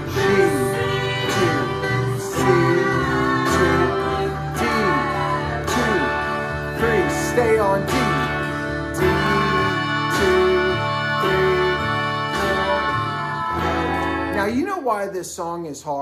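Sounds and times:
electric guitar strumming chords: 0.0 - 14.6
man singing: 0.0 - 15.2.

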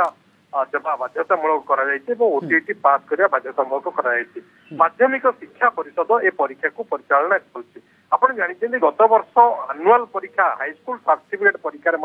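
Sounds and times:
man talking over telephone: 0.0 - 12.0.

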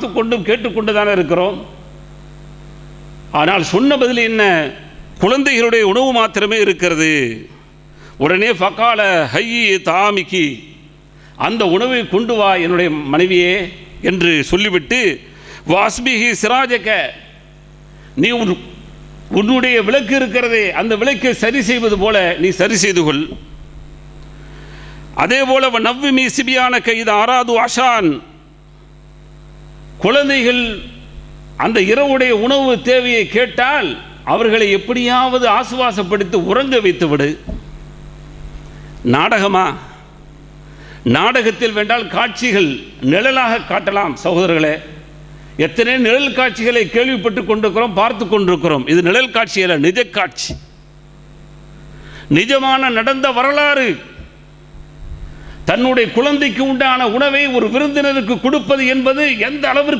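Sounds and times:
man speaking: 0.0 - 1.9, 3.3 - 7.6, 8.2 - 10.8, 11.4 - 17.4, 18.2 - 23.5, 25.2 - 28.4, 30.0 - 37.6, 39.0 - 40.2, 41.1 - 50.6, 52.3 - 54.4, 55.4 - 59.9
electrical mains hum: 0.0 - 59.9
man's voice: 18.2 - 23.5.

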